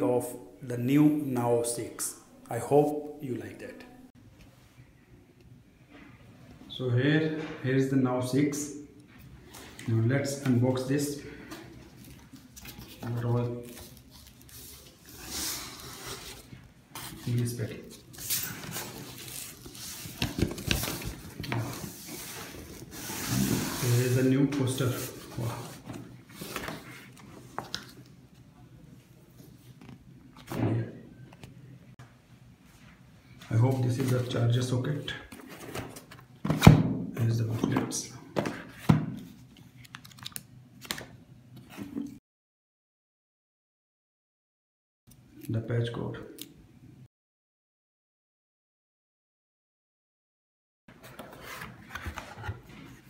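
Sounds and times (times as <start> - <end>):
cardboard box flaps scraping: 22.8 - 24.0
paper rustling and clicks: 39.5 - 41.2.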